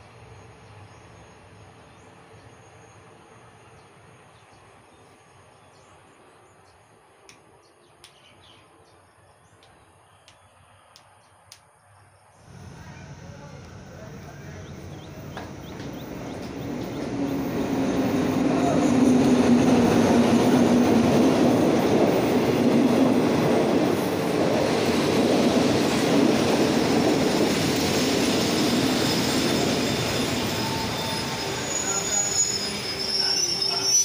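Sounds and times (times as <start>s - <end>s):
train coaches rumbling past: 12.3s - 34.0s
high brake squeals: 28.9s - 34.0s.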